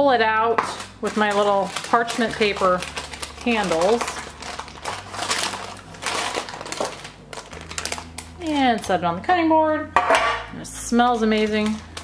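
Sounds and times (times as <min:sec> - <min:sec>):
parchment paper crinkling: 0:00.6 - 0:09.0, 0:11.0 - 0:12.0.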